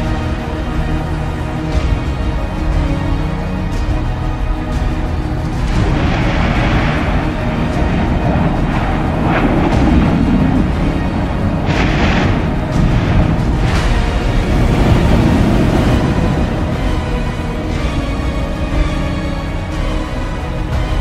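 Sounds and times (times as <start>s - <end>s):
eruption blasts: 0.0s - 21.0s
music: 0.0s - 21.0s
deep rumble of volcano: 4.8s - 20.0s.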